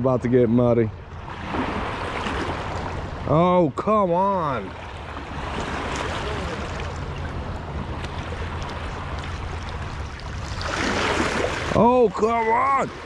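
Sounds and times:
river water rushing: 4.2 - 13.0.

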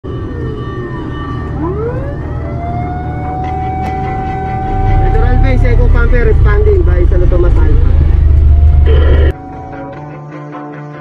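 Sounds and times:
engine and road rumble: 0.0 - 10.0
fire truck siren wailing: 0.0 - 10.0.

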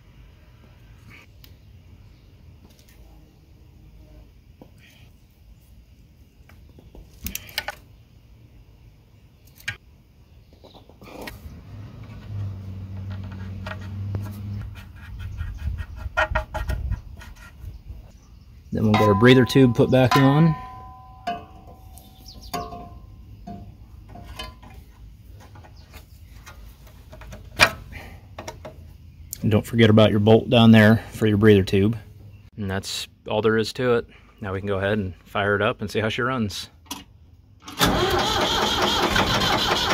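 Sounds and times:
metal tube clinking on engine: 18.8 - 24.7.

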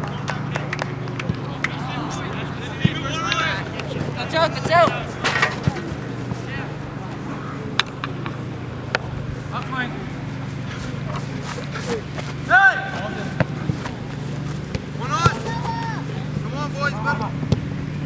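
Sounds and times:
steady low hum: 0.1 - 18.0
ball being kicked: 2.8 - 3.1, 12.2 - 15.9
loud shout: 12.5 - 13.4, 15.0 - 16.3.

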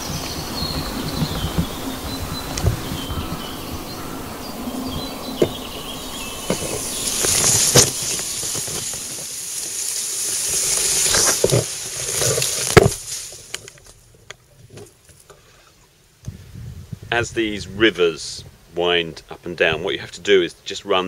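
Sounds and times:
stems knocking microphone: 0.0 - 9.4, 10.7 - 15.3
reeds brushing against camera: 0.0 - 15.3.

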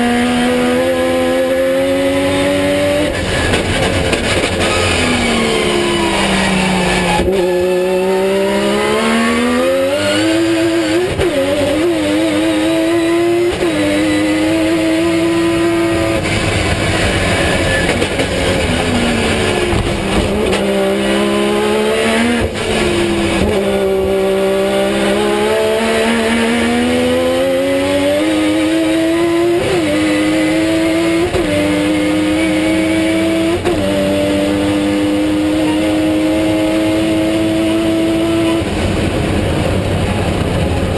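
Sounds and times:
race car engine revving: 0.0 - 40.9
broad rush of noise: 38.4 - 40.9.

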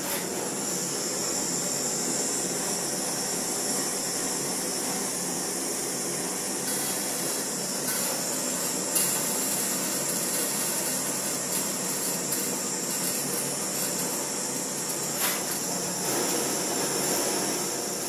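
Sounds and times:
blowtorch hissing: 0.0 - 18.0.

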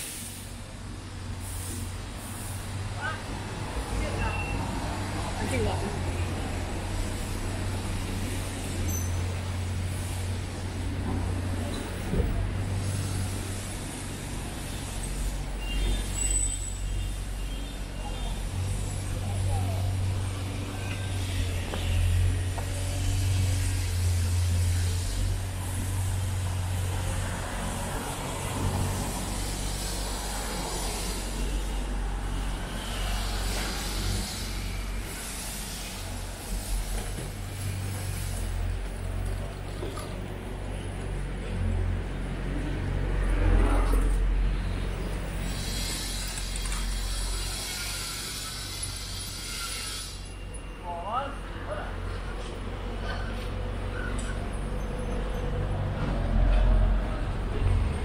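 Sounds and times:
passing traffic rumble: 0.0 - 49.5, 50.1 - 58.0
voices of passers-by: 0.4 - 49.3.

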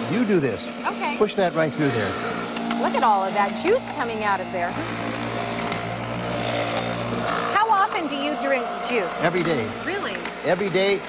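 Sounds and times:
electric juicer motor humming: 0.0 - 11.0.

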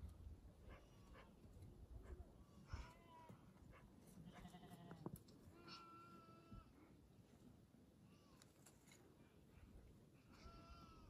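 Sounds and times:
baby goat bleating: 4.3 - 4.9, 5.6 - 6.7, 10.3 - 11.0.

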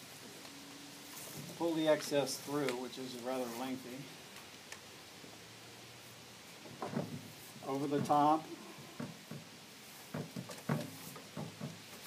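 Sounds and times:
rope scuffing and rustling: 0.0 - 4.8, 6.0 - 12.0.

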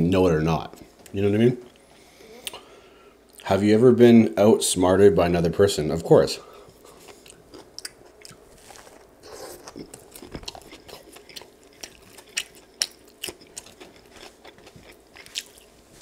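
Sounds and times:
close chewing and crunching: 6.7 - 16.0.

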